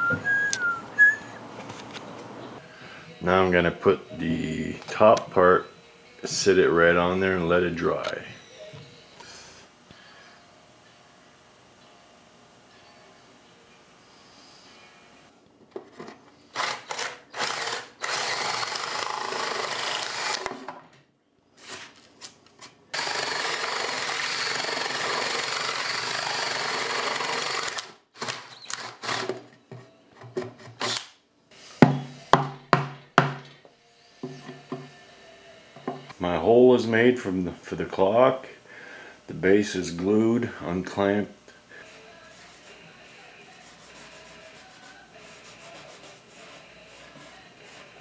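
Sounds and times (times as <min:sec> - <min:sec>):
cordless drill boring wood: 0:16.6 - 0:20.6, 0:23.0 - 0:29.3.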